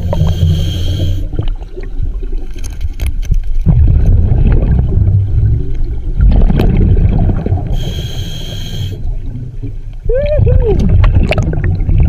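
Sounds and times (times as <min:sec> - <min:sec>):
regulator hissing inhalation: 0:00.0 - 0:01.3, 0:07.8 - 0:09.0
exhaled bubbles underwater: 0:00.0 - 0:02.5, 0:03.6 - 0:12.0.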